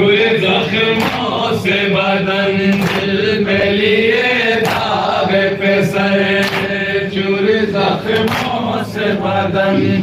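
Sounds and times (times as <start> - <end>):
men chanting a lament: 0.0 - 10.0
chest-beating slaps: 1.0 - 1.4, 2.7 - 3.2, 4.6 - 5.0, 6.4 - 6.8, 8.1 - 8.6.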